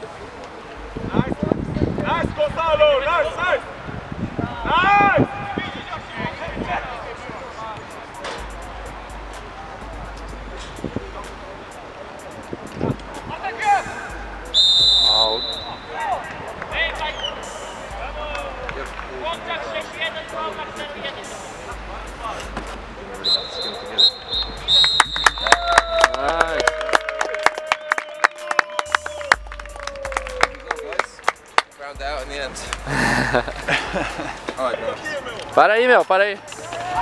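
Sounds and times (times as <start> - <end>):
background music: 7.8 - 37.0
referee's whistle blasts: 13.8 - 16.0, 17.1 - 18.0, 23.2 - 25.7
fast sharp beats: 28.4 - 34.7.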